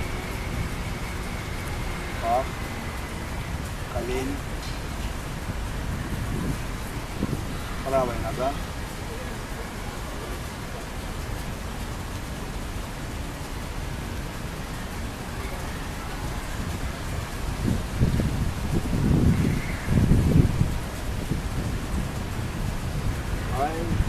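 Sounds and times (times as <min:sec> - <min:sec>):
wind buffeting microphone: 0:00.0 - 0:09.4, 0:16.0 - 0:24.0
background hiss: 0:00.0 - 0:24.0.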